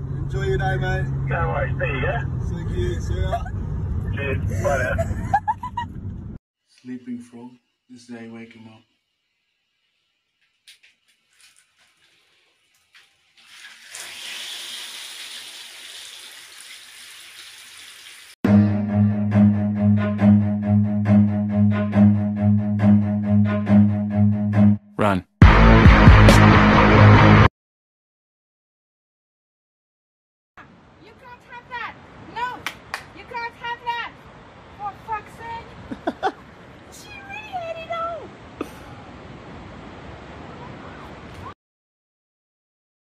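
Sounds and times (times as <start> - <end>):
water running from a tap: 11.4 - 18.4
music with low bowed strings: 18.5 - 24.7.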